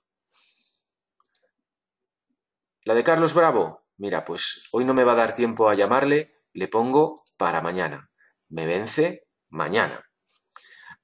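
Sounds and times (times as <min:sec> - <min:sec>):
computer mouse clicks: 0:01.2 - 0:01.5.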